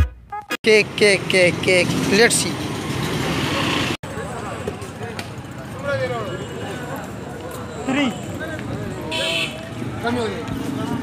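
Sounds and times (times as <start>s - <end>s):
street background noise: 0.1s - 11.0s.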